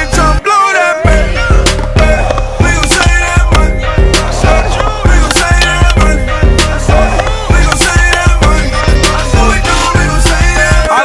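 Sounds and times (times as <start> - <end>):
hip-hop drum beat: 1.0 - 11.0
skateboard wheels rolling on concrete: 1.5 - 11.0
skateboard clacking on ground: 1.7 - 6.1, 7.0 - 8.4.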